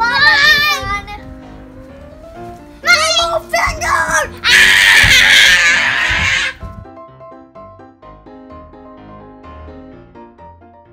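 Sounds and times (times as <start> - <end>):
child screaming excitedly: 0.0 - 1.0, 2.8 - 6.6
background music: 0.0 - 10.9.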